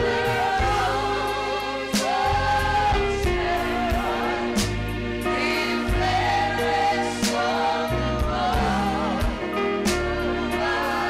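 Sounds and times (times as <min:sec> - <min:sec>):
gospel singing voices: 0:00.0 - 0:11.0
keyboard and bass: 0:00.0 - 0:11.0.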